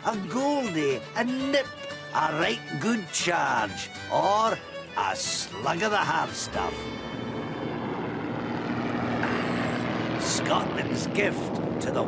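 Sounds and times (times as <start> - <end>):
aeroplane engine drone: 0.0 - 12.0.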